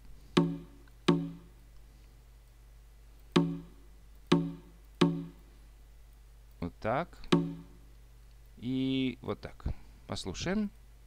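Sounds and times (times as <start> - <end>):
conga hits: 0.4 - 1.5, 3.4 - 5.4, 7.3 - 7.8.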